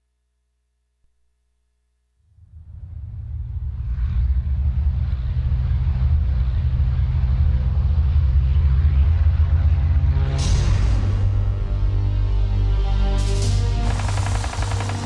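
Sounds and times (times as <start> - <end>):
deep rumble from film soundtrack: 2.4 - 15.0.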